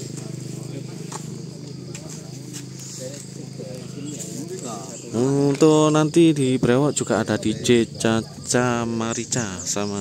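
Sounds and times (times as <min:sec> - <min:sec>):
motorcycle engine running: 0:00.0 - 0:10.0
people talking faintly: 0:00.0 - 0:10.0.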